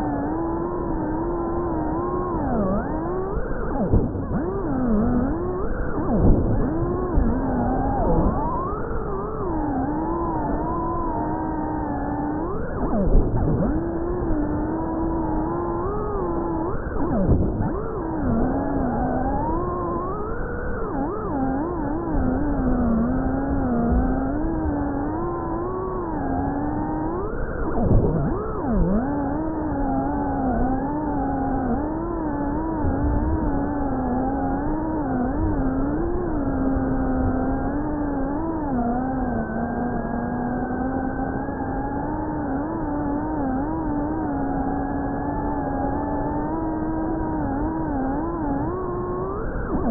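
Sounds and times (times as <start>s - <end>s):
drone motors whining: 0.0s - 49.9s.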